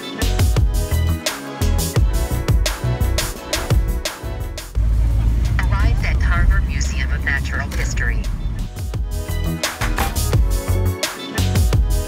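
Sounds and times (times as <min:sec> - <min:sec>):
background music: 0:00.0 - 0:12.0
car road rumble from inside: 0:04.8 - 0:08.8
indistinct voices talking: 0:05.2 - 0:08.7.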